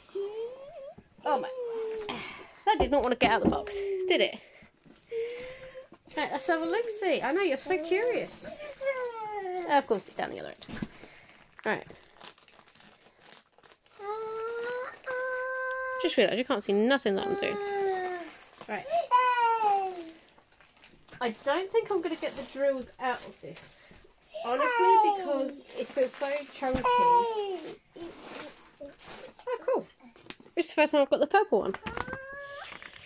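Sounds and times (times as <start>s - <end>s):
plastic wrapping crinkling: 4.8s - 16.4s, 17.2s - 30.4s, 31.7s - 33.0s.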